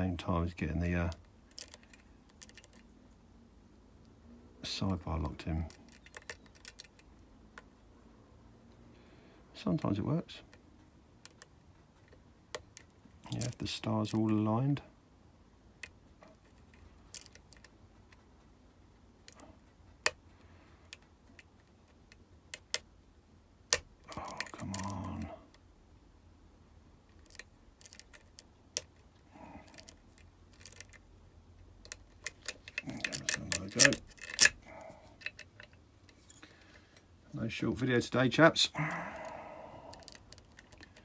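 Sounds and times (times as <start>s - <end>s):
lock pick clicking in lock: 1.5s - 2.8s, 5.8s - 7.1s, 17.1s - 17.7s, 22.5s - 22.9s, 23.7s - 25.0s, 27.1s - 29.0s, 29.6s - 31.0s, 31.8s - 35.8s, 39.9s - 41.0s.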